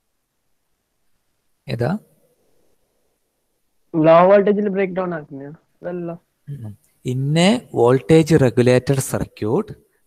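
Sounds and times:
person speaking: 3.9 - 9.8.

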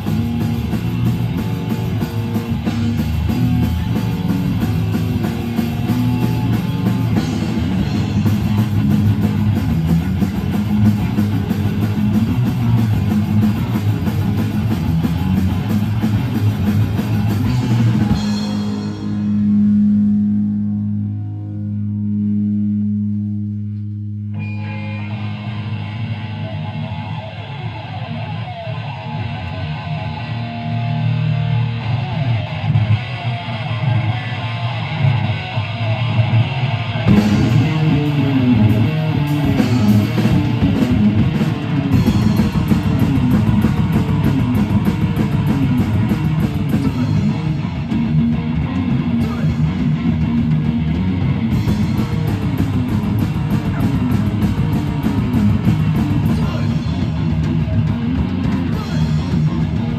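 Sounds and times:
drums and cymbals hitting: 0.0 - 20.6, 37.0 - 59.9
live rock band playing: 0.0 - 23.5, 24.2 - 59.9.

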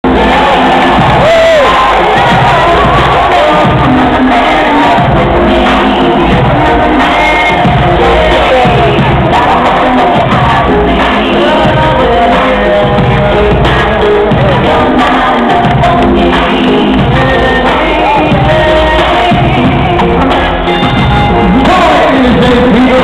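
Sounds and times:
crowd cheering and shouting: 0.0 - 23.0
entrance music over sound system: 0.0 - 23.0.

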